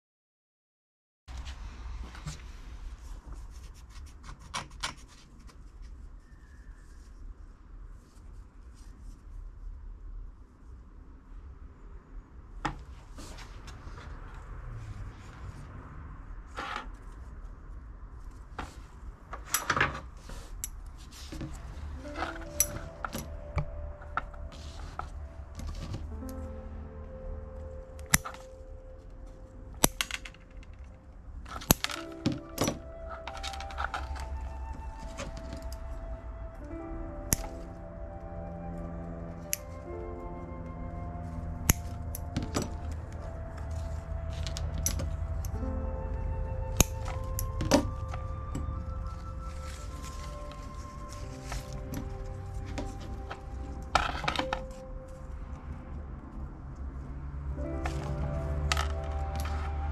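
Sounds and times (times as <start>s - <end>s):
quiet background music: 1.3s - 59.9s
scissors snipping stems: 37.3s - 37.7s, 41.6s - 42.6s, 46.7s - 48.1s.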